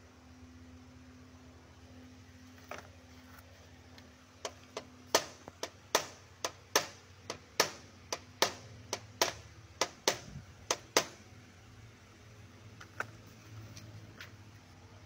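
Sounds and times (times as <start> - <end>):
hammer tapping on metal: 4.4 - 11.2.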